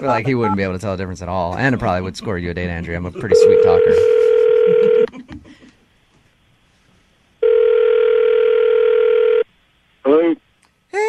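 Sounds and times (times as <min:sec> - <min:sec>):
telephone ringback tone: 0:03.3 - 0:05.1, 0:07.4 - 0:09.4.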